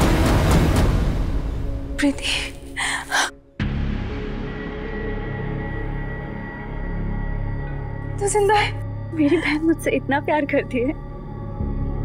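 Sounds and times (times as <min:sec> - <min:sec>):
dramatic music drone: 0:00.0 - 0:12.0
woman gasping: 0:02.2 - 0:03.4.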